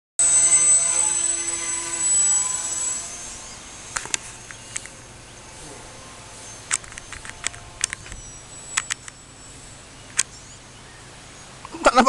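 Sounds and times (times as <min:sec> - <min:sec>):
electric motor and propeller whining: 0:00.2 - 0:11.8.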